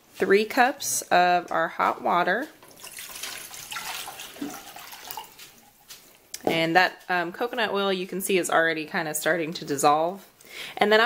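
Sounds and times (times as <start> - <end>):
water pouring into metal bowl: 2.6 - 5.7.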